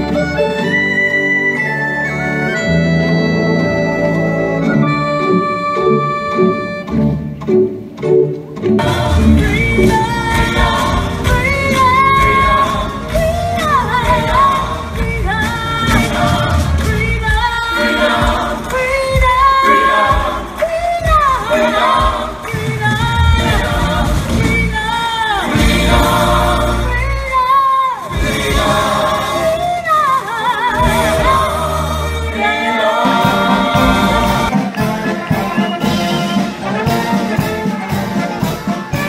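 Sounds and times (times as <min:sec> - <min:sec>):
instrumental accompaniment: 0:00.0 - 0:27.4, 0:30.7 - 0:39.0
ornamented singing: 0:08.6 - 0:39.0.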